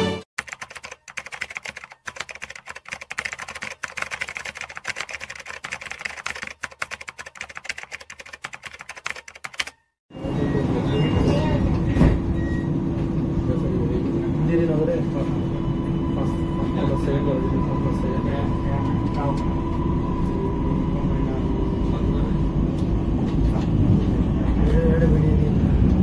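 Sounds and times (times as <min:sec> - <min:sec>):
onboard station announcement: 0:10.1 - 0:26.0
train rumbling: 0:10.2 - 0:26.0.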